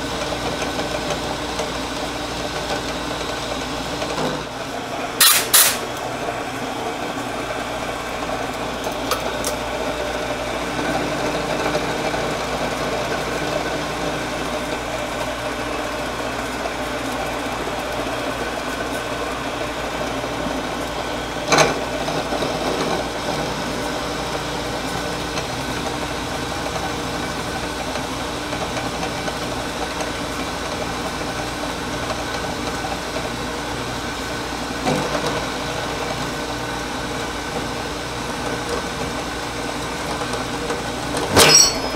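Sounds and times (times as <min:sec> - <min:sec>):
milling machine cutting steel: 0:05.1 - 0:06.1, 0:41.2 - 0:41.9.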